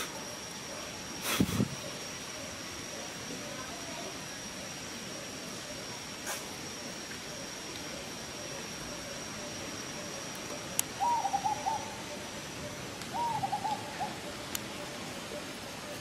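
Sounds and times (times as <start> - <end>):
animal hooting calls: 11.0 - 14.4.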